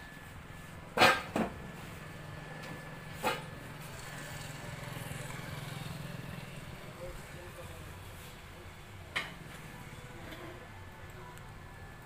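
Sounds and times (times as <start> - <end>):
small engine humming: 1.6 - 12.0.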